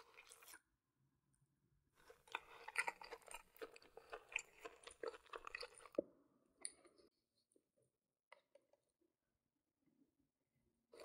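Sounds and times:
crisp chewing crunches: 2.0s - 6.0s.

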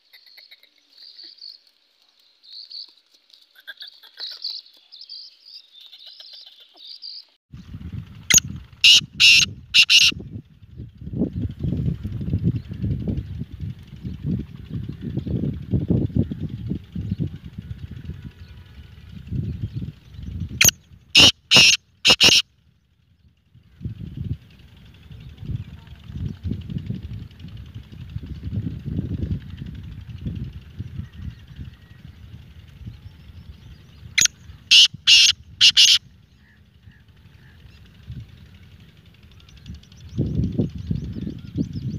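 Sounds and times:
wind rumble on microphone: 7.5s - 41.9s
francolin harsh calls: 8.3s - 10.1s, 20.6s - 22.4s, 34.1s - 37.8s.

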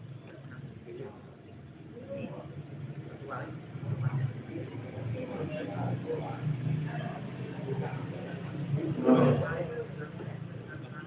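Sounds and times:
men talking in a group: 0.2s - 11.0s.

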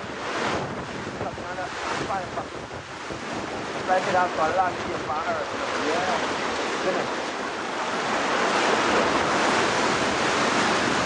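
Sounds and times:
sea water washing and slapping: 0.0s - 11.0s
wind buffeting microphone: 0.0s - 11.0s.

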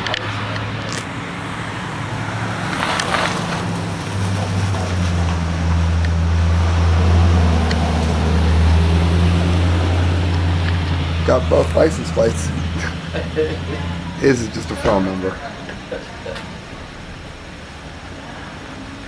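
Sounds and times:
vehicle engine humming: 0.0s - 19.0s.

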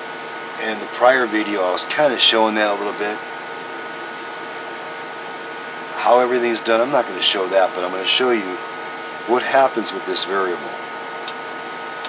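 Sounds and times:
electronics hiss and hum: 0.0s - 12.0s.

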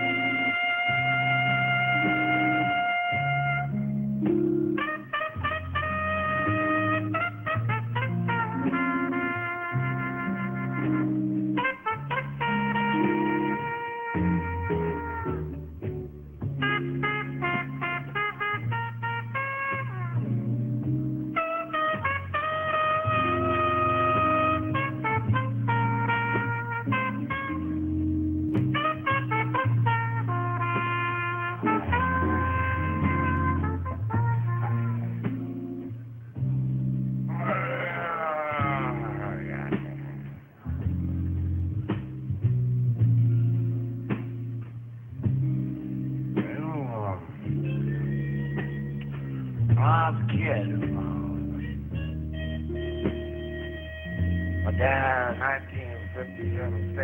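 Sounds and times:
jazz horn melody: 0.0s - 37.7s, 50.4s - 57.0s
rhythm accompaniment: 0.0s - 37.7s, 38.6s - 57.0s
bass line: 0.0s - 57.0s.

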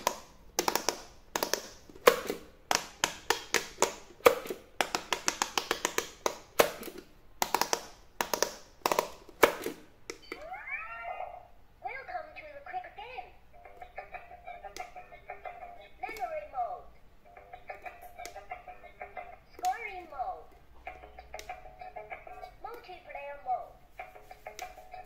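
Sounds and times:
fingers tapping silicone buttons: 0.0s - 10.4s, 14.5s - 16.4s, 17.4s - 19.9s.

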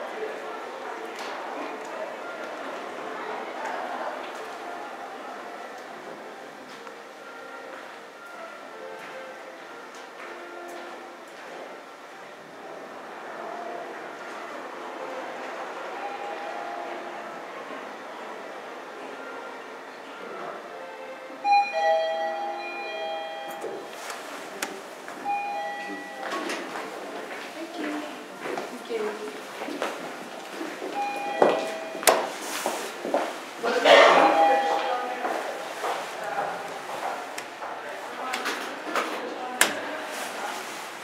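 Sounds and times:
elevator arrival chime: 15.9s - 17.2s, 21.4s - 24.0s, 25.2s - 26.8s, 30.9s - 32.4s, 33.9s - 35.3s.

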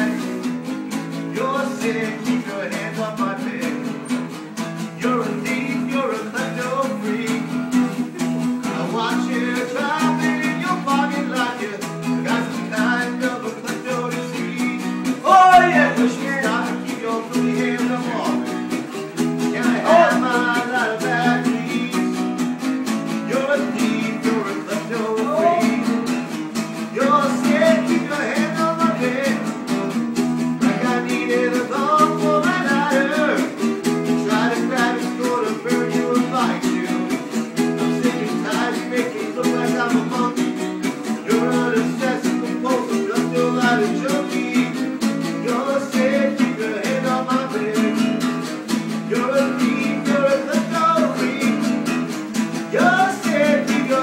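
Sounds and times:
strummed acoustic guitar: 0.0s - 54.0s
person singing: 1.1s - 4.1s, 4.9s - 22.3s, 23.1s - 26.2s, 26.8s - 29.8s, 30.6s - 54.0s.

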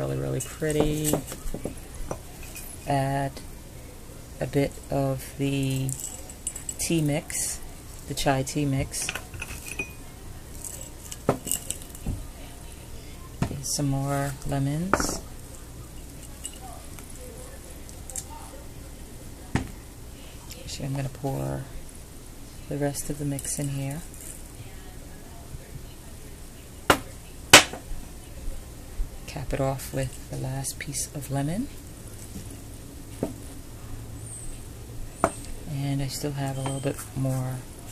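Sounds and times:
spices clinking and rustling: 0.4s - 18.6s, 22.7s - 24.9s, 34.2s - 37.9s.

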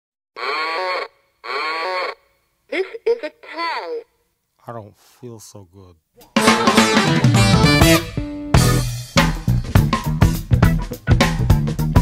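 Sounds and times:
sampled voice calls: 0.4s - 2.9s.

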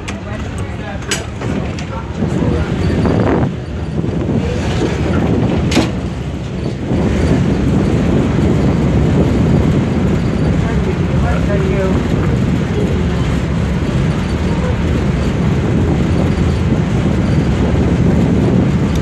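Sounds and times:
boat crossing choppy water: 0.0s - 19.0s
boat engine: 0.0s - 19.0s
wind rumble: 0.0s - 19.0s.

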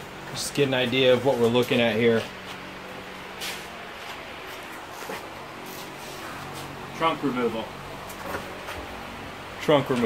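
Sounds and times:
fan running: 0.0s - 10.0s.

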